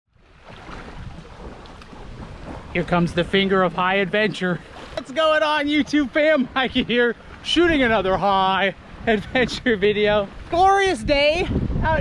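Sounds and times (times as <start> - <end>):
wind rushing over microphone: 0.3 - 5.0, 5.7 - 12.0.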